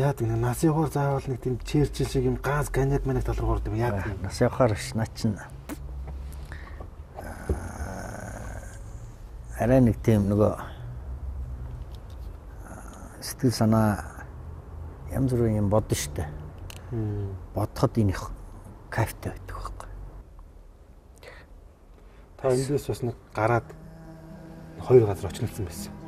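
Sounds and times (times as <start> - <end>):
man speaking: 0.0 - 5.6, 22.4 - 26.0
person breathing in: 6.4 - 8.8
low steady hum: 18.3 - 26.0.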